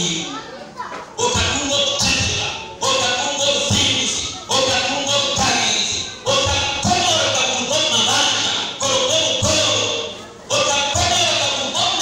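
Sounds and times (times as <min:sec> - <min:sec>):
person singing worship song: 0:01.2 - 0:12.0.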